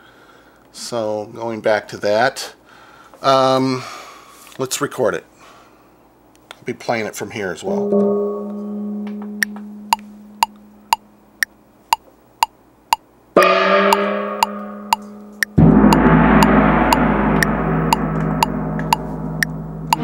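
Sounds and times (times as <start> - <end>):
tam-tam gong ringing: 7.7 - 10.5, 13.4 - 20.0
metronome clicking: 9.4 - 13.0, 13.9 - 15.6.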